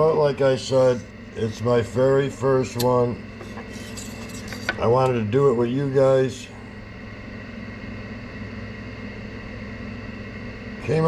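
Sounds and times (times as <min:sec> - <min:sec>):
steady background hum and hiss: 0:00.0 - 0:11.0.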